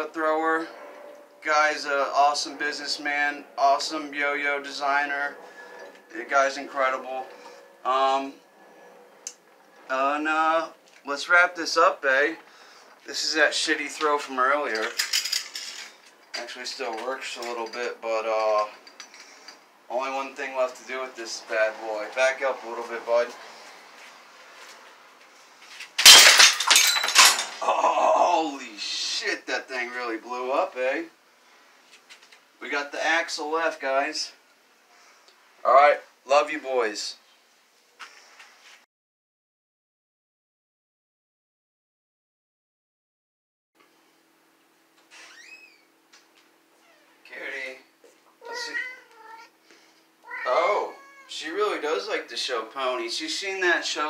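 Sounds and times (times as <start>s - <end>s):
pieces clattering: 14.8s - 16.1s, 25.8s - 27.7s
cat meowing: 48.4s - 49.6s, 50.2s - 51.3s.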